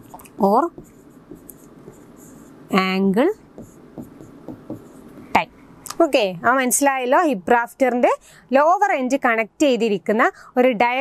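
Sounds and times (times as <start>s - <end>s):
pen scratching on screen: 0.0s - 2.9s, 3.6s - 5.3s
person speaking: 0.0s - 7.7s.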